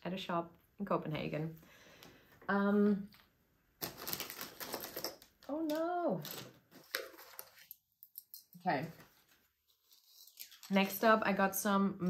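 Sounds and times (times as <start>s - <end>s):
small objects clicking and rattling: 3.8s - 8.6s, 9.8s - 11.2s.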